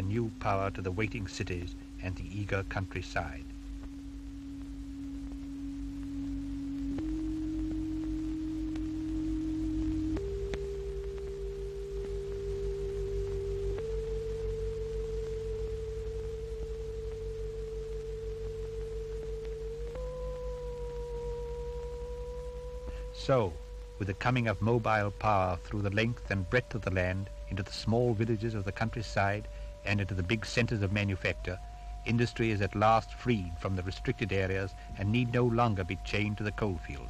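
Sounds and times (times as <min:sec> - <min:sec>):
higher tone: 0:00.0 - 0:37.0
low electrical hum: 0:00.0 - 0:37.0
pure tone stepping up in pitch: 0:00.0 - 0:37.0.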